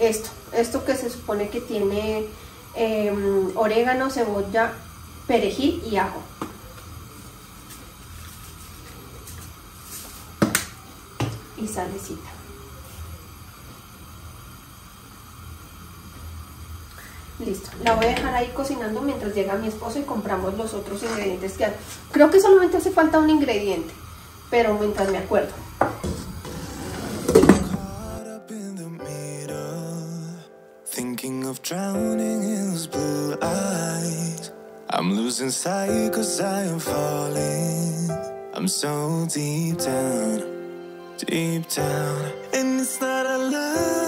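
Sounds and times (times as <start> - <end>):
background music with held notes: 27.8 - 44.0.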